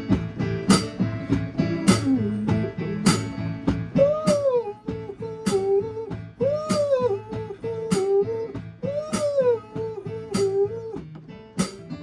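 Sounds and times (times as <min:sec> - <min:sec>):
electric keyboard rock and roll: 0:00.0 - 0:12.0.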